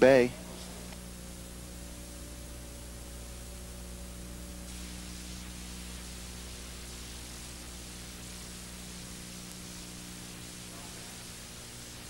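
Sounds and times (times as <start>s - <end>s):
low electrical hum: 0.0s - 12.0s
steady hiss: 0.0s - 12.0s.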